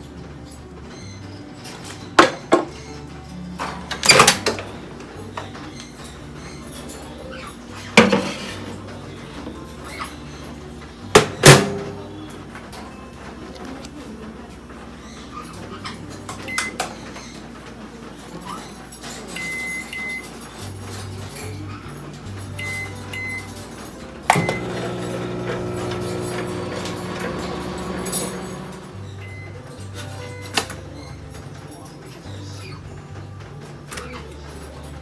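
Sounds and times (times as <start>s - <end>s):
soft background music: 0.0s - 35.0s
microwave oven humming: 24.2s - 29.5s.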